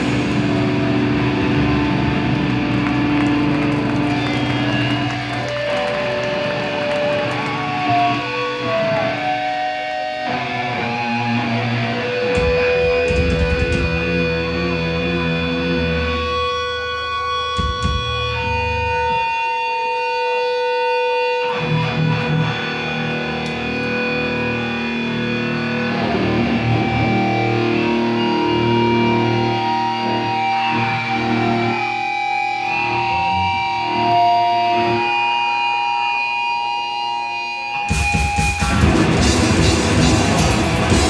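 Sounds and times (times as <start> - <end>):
distorted electric guitars: 0.0 - 41.0
guitar amp feedback: 0.0 - 41.0.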